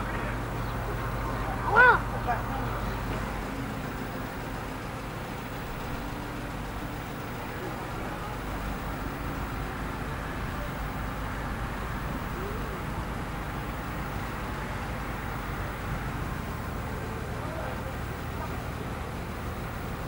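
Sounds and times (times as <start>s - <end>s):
constant low rumble: 0.0s - 20.0s
distant indistinct voices: 0.0s - 20.0s.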